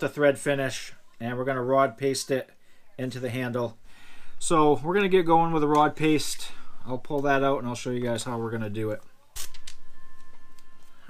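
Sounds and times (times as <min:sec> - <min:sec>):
faint steady high tone: 0:09.0 - 0:11.0.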